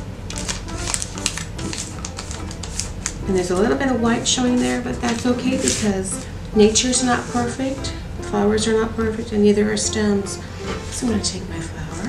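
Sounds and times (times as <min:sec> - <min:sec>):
steady low hum: 0:00.0 - 0:12.0
paper folding and creasing: 0:00.3 - 0:03.7, 0:04.3 - 0:06.4.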